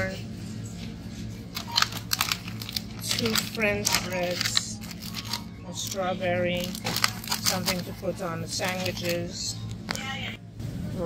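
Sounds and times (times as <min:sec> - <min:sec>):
low steady hum: 0:00.0 - 0:11.0
plastic packaging crinkling: 0:01.5 - 0:10.0.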